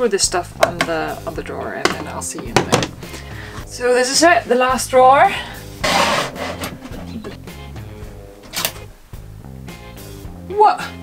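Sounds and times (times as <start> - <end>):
background music: 0.0 - 11.0
wooden drawer clacking shut: 2.5 - 3.0.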